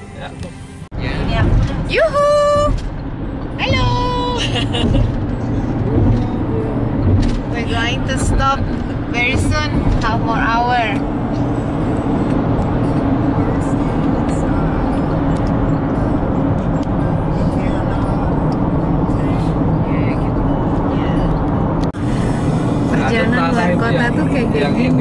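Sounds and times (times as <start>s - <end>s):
road and engine noise inside van: 0.0s - 25.0s.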